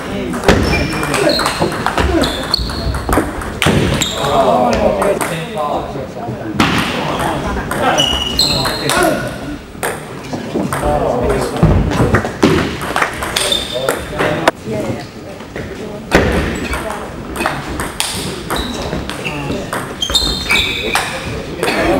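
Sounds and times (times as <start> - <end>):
voices talking: 0.0 - 12.2.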